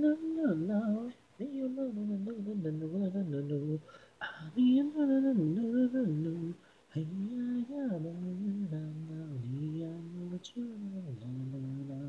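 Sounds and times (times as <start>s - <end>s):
woman singing a cappella: 0.0s - 12.0s.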